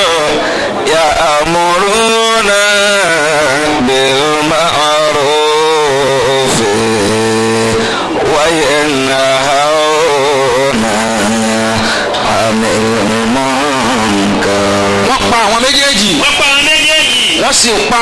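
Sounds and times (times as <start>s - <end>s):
man chanting into a microphone: 0.0s - 18.0s.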